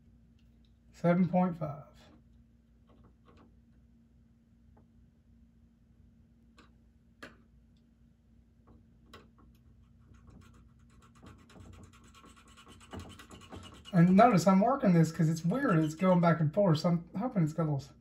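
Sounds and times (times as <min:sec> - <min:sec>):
faint steady hum: 0:00.0 - 0:18.0.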